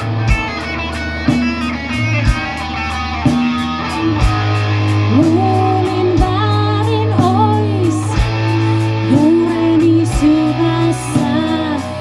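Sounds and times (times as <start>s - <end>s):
bass guitar: 0.0s - 12.0s
electric guitars: 0.0s - 12.0s
steady drum beat: 0.0s - 12.0s.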